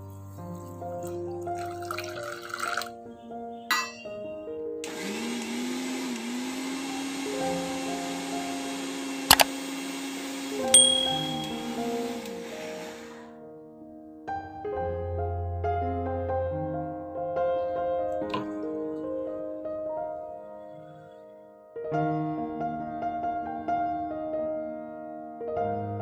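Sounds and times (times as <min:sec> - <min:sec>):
soft background music: 0:00.0 - 0:05.0
mixer grinder motor humming: 0:04.8 - 0:13.3.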